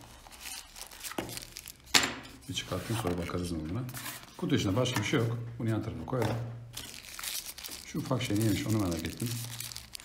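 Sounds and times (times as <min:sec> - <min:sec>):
cardboard and plastic crinkling: 0:00.0 - 0:05.2, 0:06.1 - 0:10.0.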